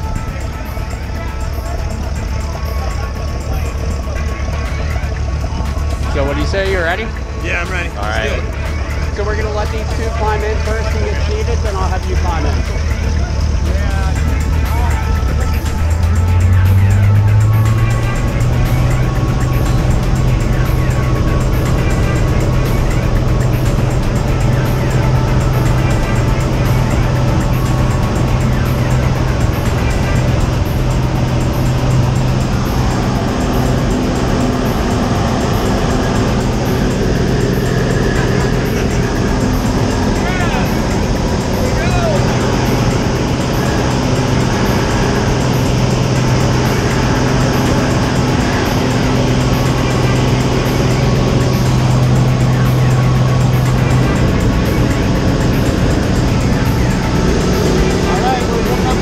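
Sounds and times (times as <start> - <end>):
music track: 0.0 - 59.0
propeller plane droning: 0.0 - 59.0.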